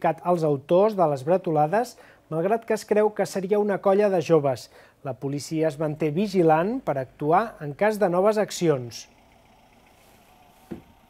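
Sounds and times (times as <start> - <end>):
short low thump: 10.6 - 10.9.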